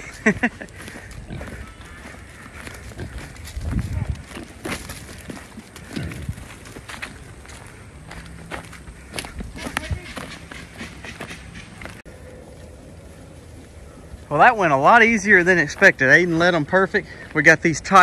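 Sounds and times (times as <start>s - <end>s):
footsteps on dry leaves: 0.0s - 17.4s.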